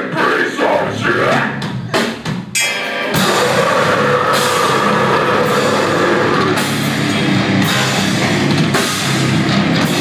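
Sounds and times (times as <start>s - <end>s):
heavy rock band playing: 0.0s - 10.0s.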